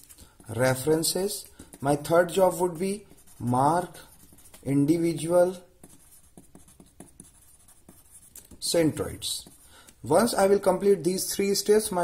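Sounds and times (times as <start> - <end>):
pencil scratching on paper: 0.0 - 9.7.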